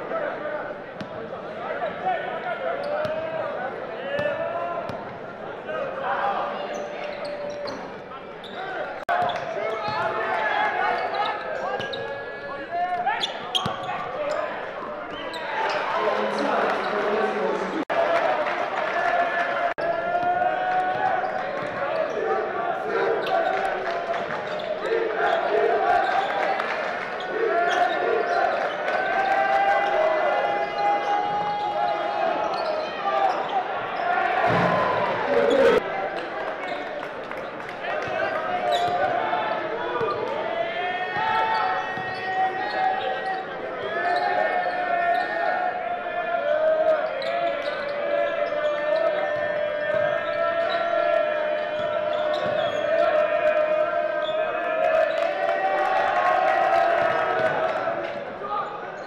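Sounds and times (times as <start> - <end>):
voices echoing in a hall: 0.0 - 59.0.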